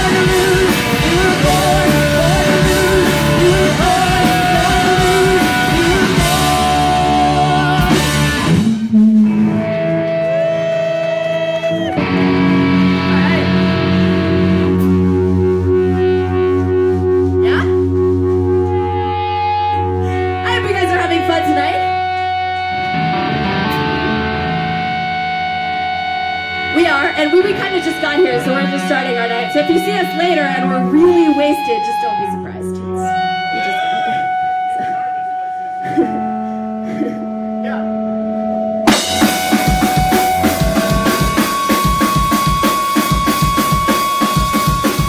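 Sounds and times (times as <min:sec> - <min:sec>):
distorted guitar chords ringing: 0:00.0 - 0:45.0
punk rock band playing: 0:00.0 - 0:45.0.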